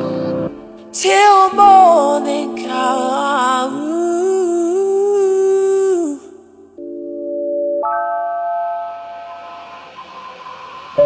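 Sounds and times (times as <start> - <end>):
held female vocal note with reverb: 0.0 - 6.8.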